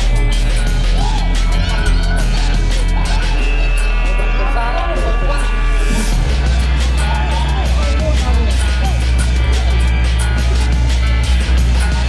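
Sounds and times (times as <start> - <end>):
loud bass-heavy dance music: 0.0 - 12.0.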